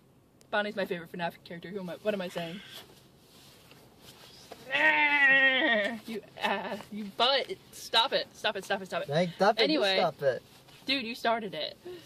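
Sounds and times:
person making wavering cry: 4.7 - 6.0.

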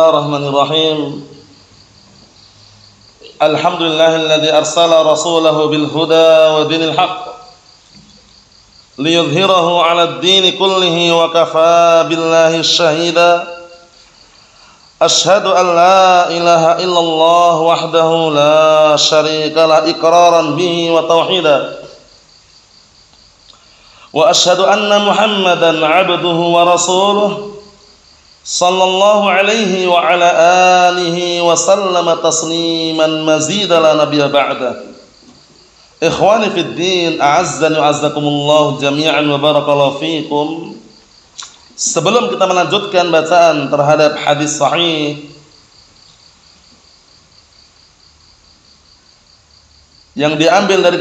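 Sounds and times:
cricket chirping: 0.0 - 51.0
faint background noise: 0.0 - 51.0.

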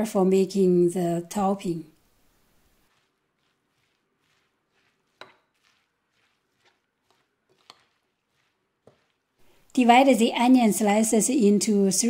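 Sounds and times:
faint brushing strokes: 2.0 - 9.8.

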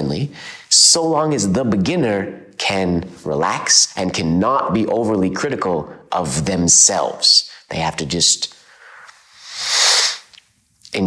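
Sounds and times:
man breathing with a hiss: 8.7 - 10.4.

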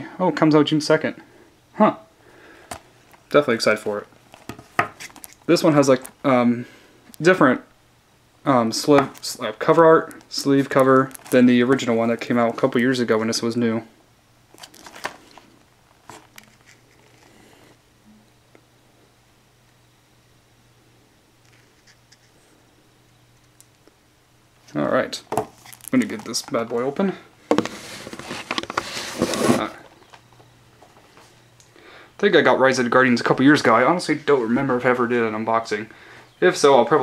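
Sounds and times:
cardboard rustling: 2.7 - 6.2, 10.1 - 12.7, 14.5 - 17.4, 25.3 - 30.4
plastic packaging crinkling: 2.7 - 6.2, 10.0 - 12.6, 14.5 - 17.4, 25.4 - 27.0.

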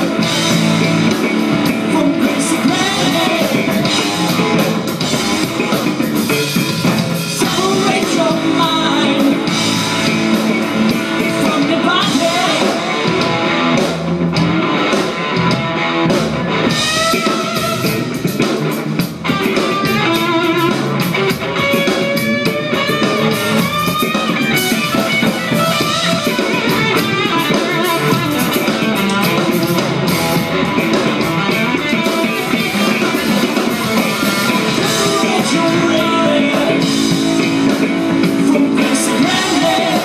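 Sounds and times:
drum kit playing: 0.0 - 40.0
electric bass: 0.0 - 40.0
plucked melodic lead line: 0.0 - 40.0.

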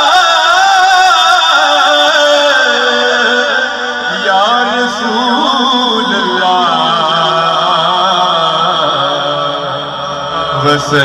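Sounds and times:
man singing into microphone: 0.0 - 11.0.

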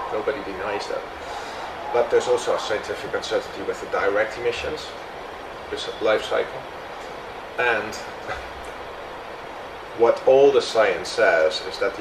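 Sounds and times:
low hum and hiss: 0.0 - 12.0.

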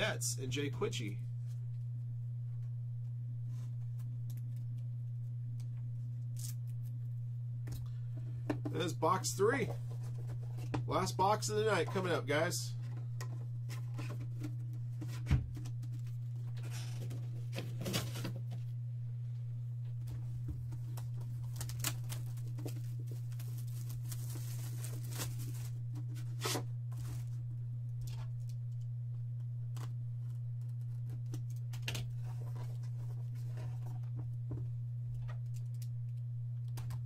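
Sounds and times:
low electrical hum: 0.0 - 37.0
plastic wrap tearing and crinkling: 21.4 - 27.3.

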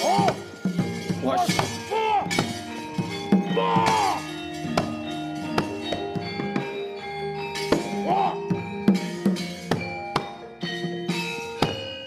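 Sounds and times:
held metallophone tones: 0.0 - 12.0.

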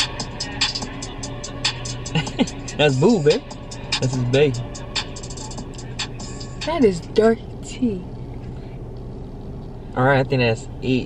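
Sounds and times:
low hum inside car cabin: 0.0 - 11.0.

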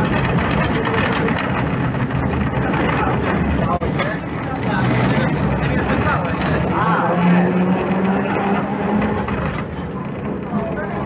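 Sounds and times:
tram rumbling and humming: 0.0 - 11.0.

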